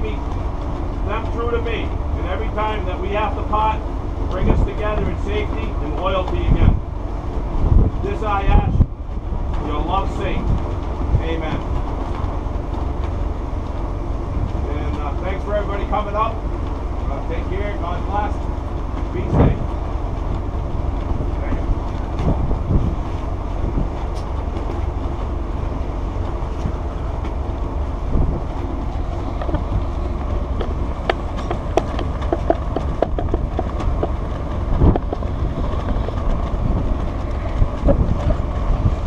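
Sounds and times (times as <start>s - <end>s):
ship low rumble: 0.0s - 39.0s
wind noise: 0.0s - 39.0s.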